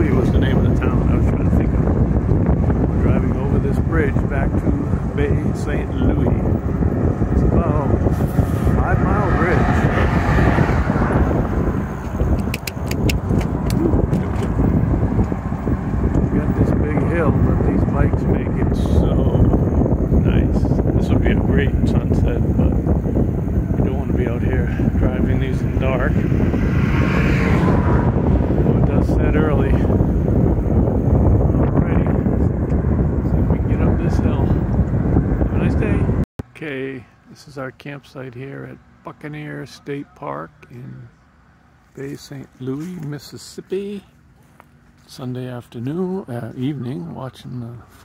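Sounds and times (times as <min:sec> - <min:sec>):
wind buffeting microphone: 0:00.0 - 0:36.3
road traffic: 0:00.0 - 0:48.0
sharp clicks: 0:12.0 - 0:14.6.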